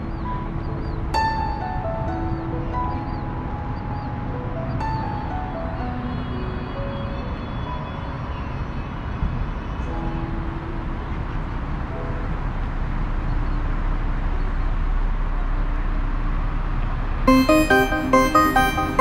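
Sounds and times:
faint musical tones: 0:00.0 - 0:16.5, 0:17.3 - 0:19.0
low street rumble: 0:00.0 - 0:19.0.

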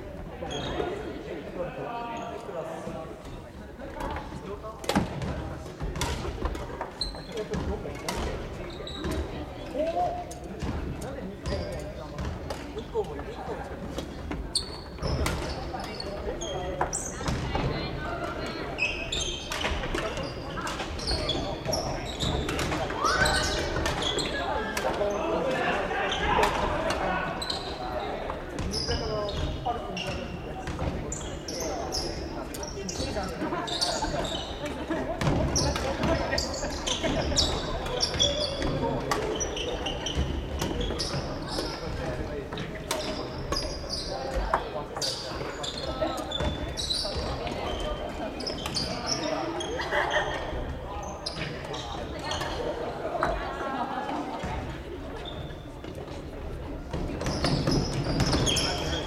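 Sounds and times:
players' voices echoing: 0:00.0 - 0:59.0.

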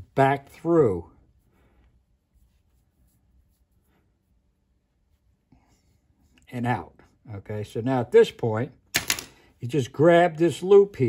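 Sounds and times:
soft rustles of handling line: 0:00.4 - 0:07.4.

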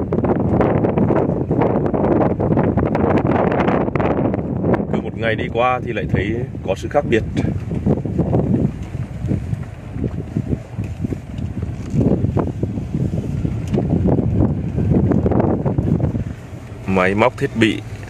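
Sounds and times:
car road noise: 0:00.0 - 0:18.0
wind buffeting microphone: 0:00.0 - 0:18.0.

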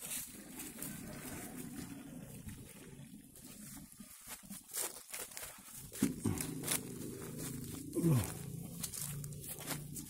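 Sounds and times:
footsteps crunching dry leaves: 0:00.0 - 0:10.0
steady low hum: 0:05.9 - 0:10.0
man saying nah: 0:08.0 - 0:08.4.

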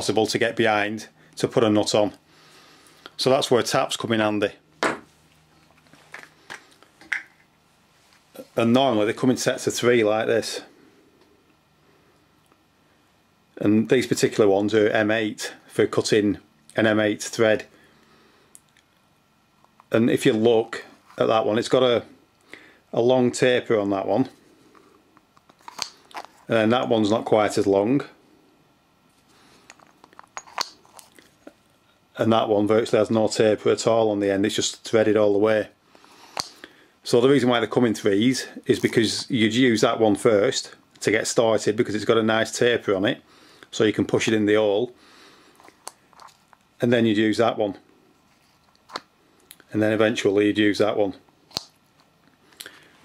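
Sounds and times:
small tools clicking and knocking: 0:29.6 - 0:31.6.

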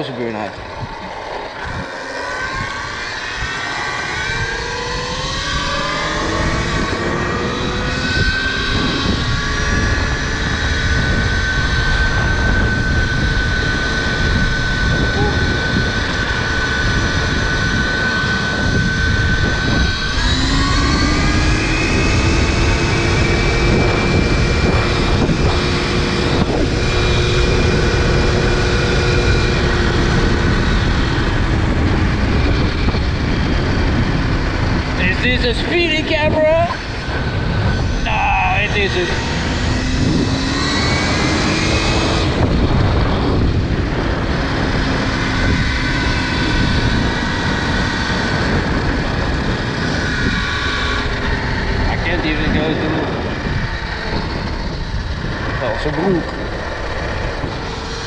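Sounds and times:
electric motorbike motor whining: 0:00.0 - 0:58.0
wind and road noise: 0:00.0 - 0:58.0.

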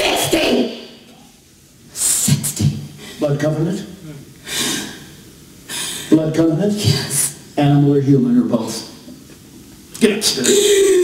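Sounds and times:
person gasping: 0:10.4 - 0:11.0.

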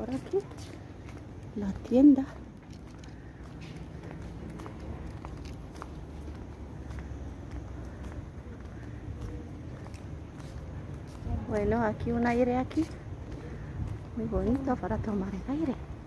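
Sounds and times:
footsteps on paving: 0:00.0 - 0:16.0
steady low rumble: 0:00.0 - 0:16.0.

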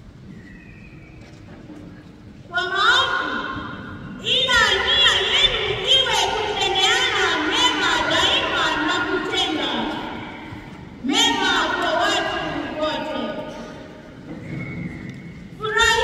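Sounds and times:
boy reading into a microphone: 0:04.2 - 0:10.2.

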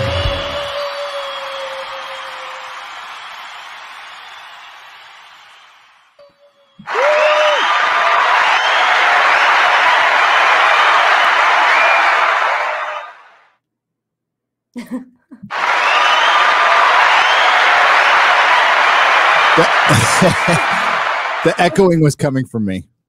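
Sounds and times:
crowd cheering and applauding: 0:00.0 - 0:13.5, 0:15.5 - 0:22.0.

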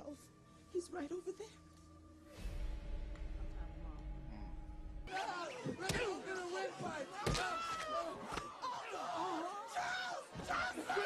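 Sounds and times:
thud: 0:02.4 - 0:06.1.

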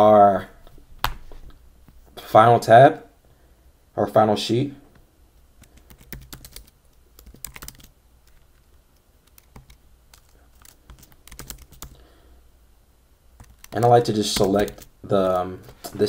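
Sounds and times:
computer keyboard typing: 0:05.6 - 0:12.0, 0:13.4 - 0:14.9.

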